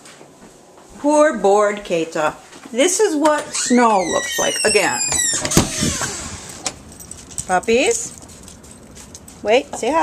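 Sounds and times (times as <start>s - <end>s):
door swinging rush: 3.4s - 7.5s.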